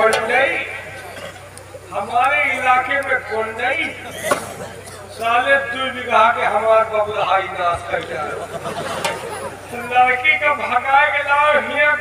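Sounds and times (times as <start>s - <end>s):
man speaking through loudspeaker: 0.0s - 8.6s, 9.5s - 12.0s
electrical hum: 0.0s - 12.0s.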